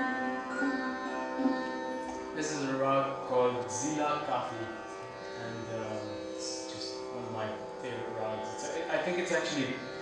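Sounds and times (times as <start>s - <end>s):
sarod plucked notes: 0.0s - 10.0s.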